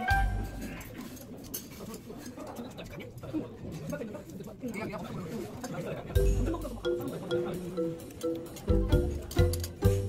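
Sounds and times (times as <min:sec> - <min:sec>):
people talking at a table: 0:00.4 - 0:10.0.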